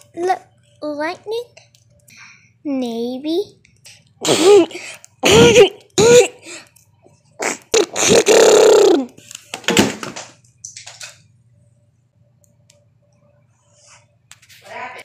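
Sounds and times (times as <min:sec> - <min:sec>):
child laughing: 0:07.5 - 0:09.2.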